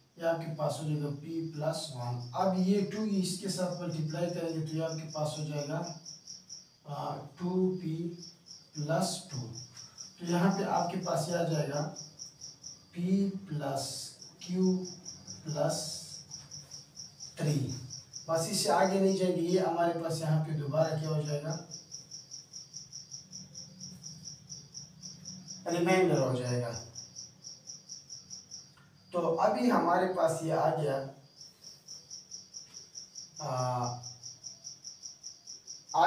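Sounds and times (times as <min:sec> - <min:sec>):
insect chirping: 0:00.0 - 0:36.0.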